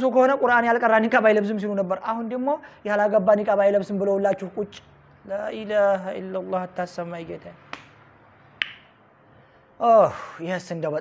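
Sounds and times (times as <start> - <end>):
man speaking: 9.8 - 11.0.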